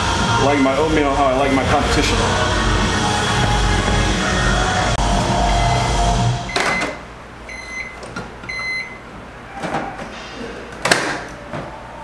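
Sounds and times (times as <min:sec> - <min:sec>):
microwave oven humming: 0:00.0 - 0:10.3.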